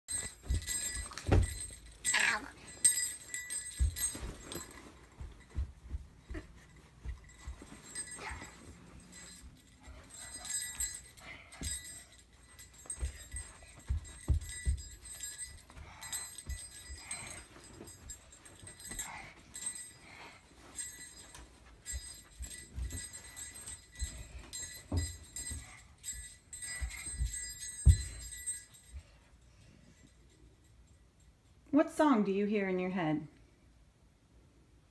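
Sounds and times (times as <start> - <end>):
bell-like jingling: 0.1 - 31.0
child's feet stomping on carpet: 0.2 - 1.9, 2.8 - 9.4, 11.6 - 19.9, 20.7 - 28.6.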